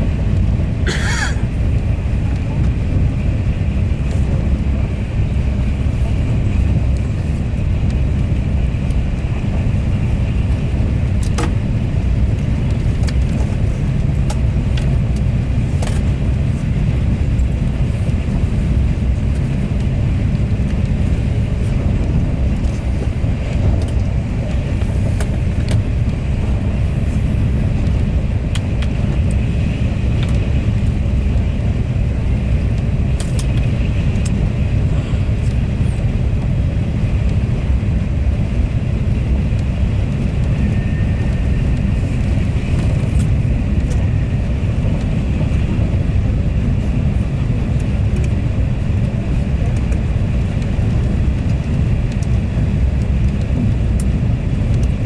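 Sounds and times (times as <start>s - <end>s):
high-speed train rumble inside coach: 0.0s - 55.0s.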